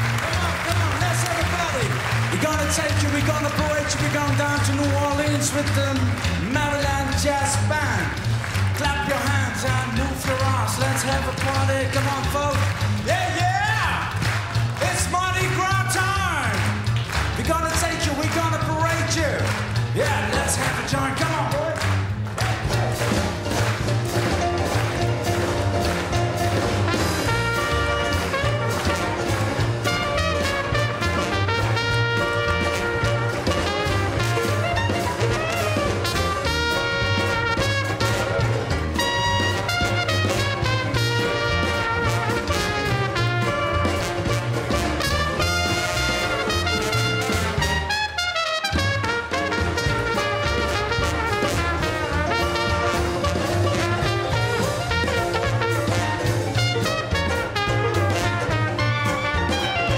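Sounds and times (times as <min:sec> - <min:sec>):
drums: 0:00.0 - 0:59.9
piano: 0:00.0 - 0:59.9
string bass: 0:00.0 - 0:59.9
banjo: 0:16.8 - 0:47.8, 0:49.3 - 0:59.9
trumpet and trombone: 0:22.4 - 0:59.9.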